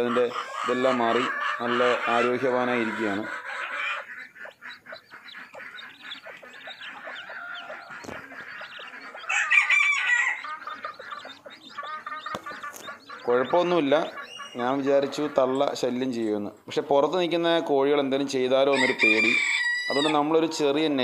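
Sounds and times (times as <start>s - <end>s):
chick peeping: 0.0s - 21.0s.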